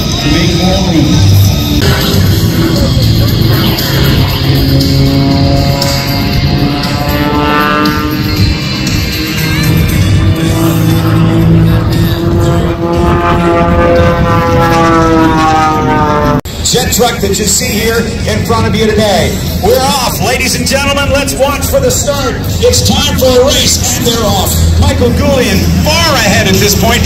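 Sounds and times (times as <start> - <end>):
loud music: 0.0 - 27.0
propeller plane engine: 0.0 - 27.0.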